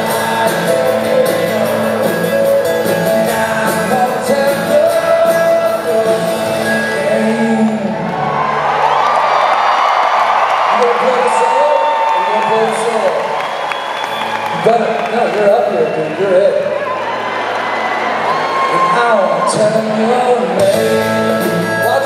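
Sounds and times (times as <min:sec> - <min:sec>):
rock band playing live: 0:00.0 - 0:09.0, 0:13.9 - 0:22.0
crowd cheering and whooping: 0:07.0 - 0:20.7.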